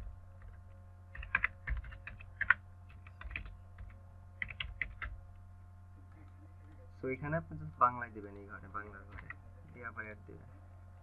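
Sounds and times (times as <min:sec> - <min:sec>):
low steady hum: 0:00.0 - 0:11.0
keyboard typing: 0:00.4 - 0:05.2, 0:09.1 - 0:09.4.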